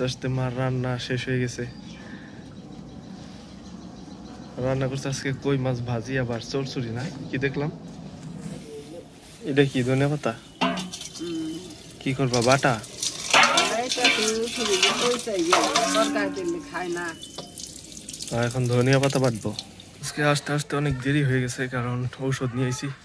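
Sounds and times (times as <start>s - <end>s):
tap water splashing: 12.3s - 20.0s.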